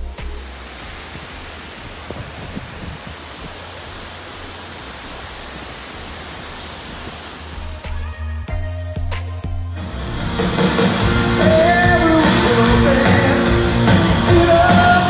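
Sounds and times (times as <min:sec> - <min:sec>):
water pouring down waterfall: 0:00.0 - 0:08.0.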